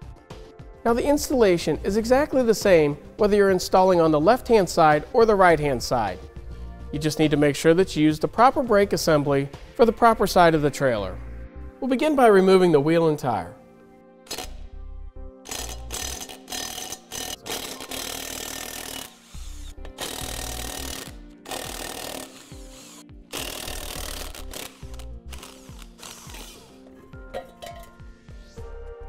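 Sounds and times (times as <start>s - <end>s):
impact wrench hammering: 15.5s - 26.7s.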